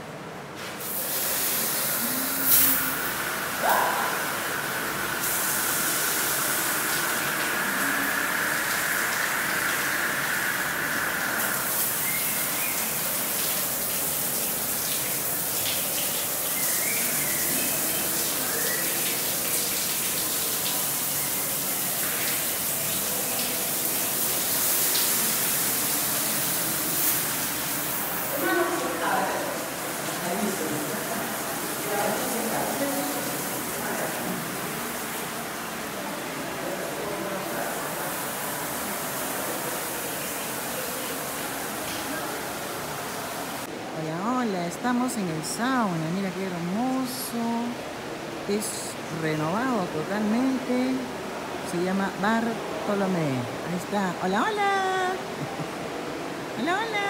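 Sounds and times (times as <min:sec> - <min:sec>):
shower water pouring: 0:00.6 - 0:43.7.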